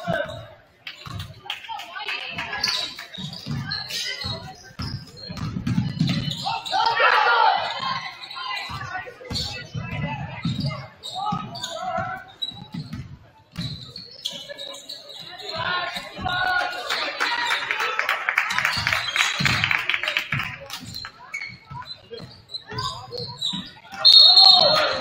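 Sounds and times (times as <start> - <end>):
voices of players and spectators: 0.0 - 25.0.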